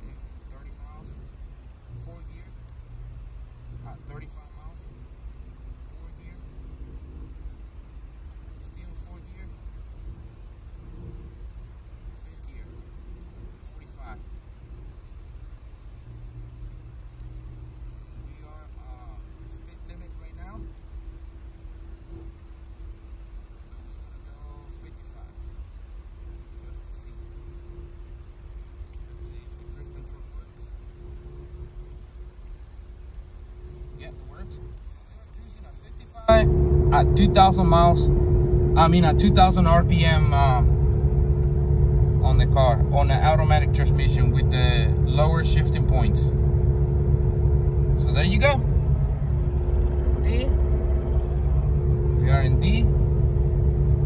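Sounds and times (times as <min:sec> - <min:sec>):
diesel engine and road rumble: 0:00.0 - 0:54.0
faint steady hum: 0:00.0 - 0:54.0.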